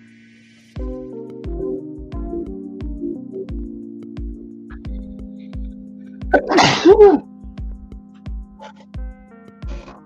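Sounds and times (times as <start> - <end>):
background music with beat: 0.0 - 10.0
person sneezing: 6.4 - 7.2.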